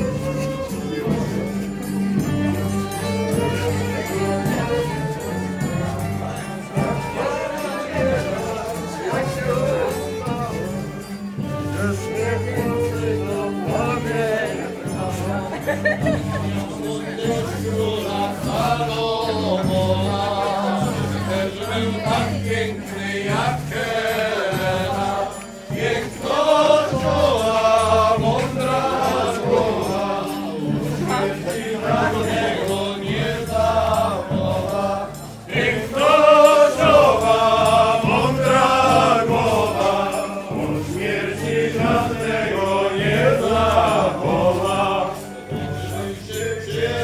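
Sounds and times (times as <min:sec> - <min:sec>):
folk band playing dance tune: 0:00.0 - 0:47.0
voices singing together: 0:00.0 - 0:47.0
double bass: 0:26.8 - 0:36.1.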